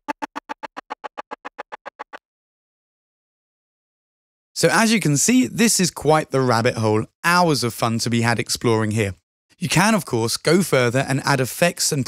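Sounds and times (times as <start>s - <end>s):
stuttering synth pulses: 0.0s - 2.2s.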